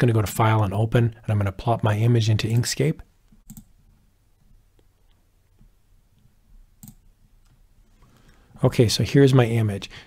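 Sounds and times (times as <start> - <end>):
computer mouse clicks: 3.3 - 3.7, 5.6 - 8.4.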